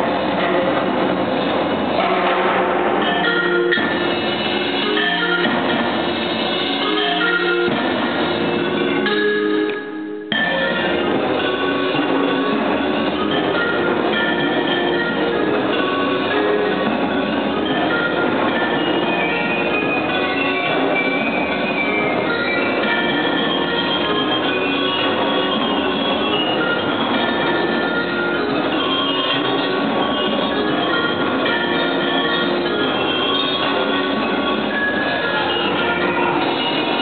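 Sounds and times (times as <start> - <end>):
marimba ensemble playing: 1.8 - 37.0.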